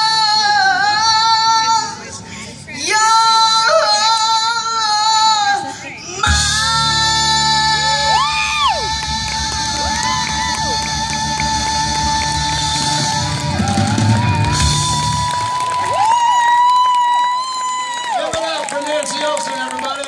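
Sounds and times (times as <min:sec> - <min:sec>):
live blues-rock band playing: 0:06.2 - 0:15.2.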